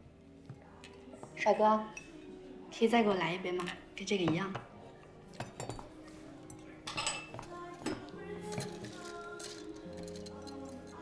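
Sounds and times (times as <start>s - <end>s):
soft background music: 0.0s - 11.0s
glassware clinking: 5.3s - 5.9s, 6.5s - 11.0s.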